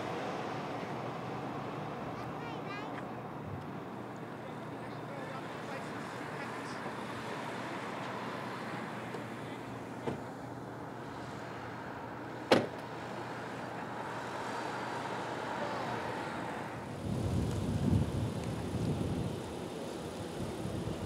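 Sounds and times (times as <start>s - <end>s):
traffic engine and tyre noise: 0.0s - 21.0s.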